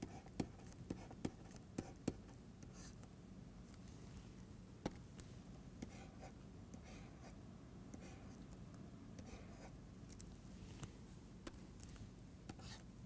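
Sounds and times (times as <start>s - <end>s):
stylus tapping and scratching on tablet: 0.0s - 3.1s, 4.8s - 12.9s
steady low hum: 0.0s - 13.0s.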